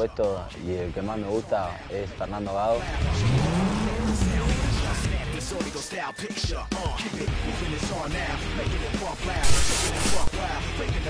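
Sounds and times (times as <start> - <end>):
hip-hop music with steady beat: 0.0 - 11.0.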